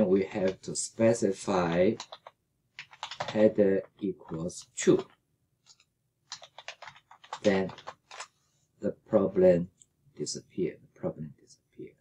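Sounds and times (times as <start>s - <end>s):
keyboard keystrokes: 2.0s - 3.4s, 5.7s - 8.3s.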